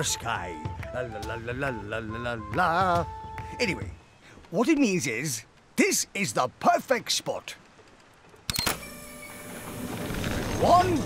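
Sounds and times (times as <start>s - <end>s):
winch mechanical whirr: 8.5s - 11.0s.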